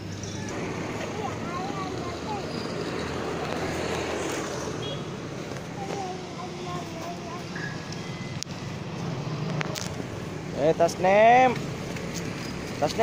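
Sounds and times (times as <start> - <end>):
traffic hum: 0.0 - 13.0.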